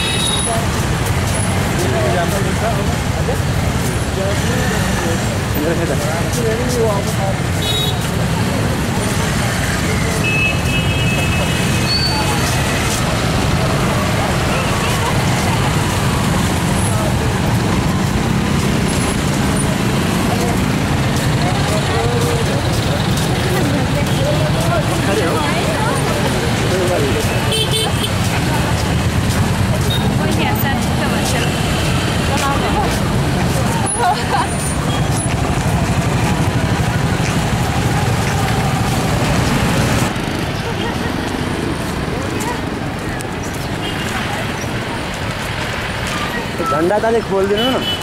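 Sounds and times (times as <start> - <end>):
cars and trucks passing: 0.0 - 48.0
crowd voices: 0.0 - 48.0
motorcycles passing: 0.0 - 48.0.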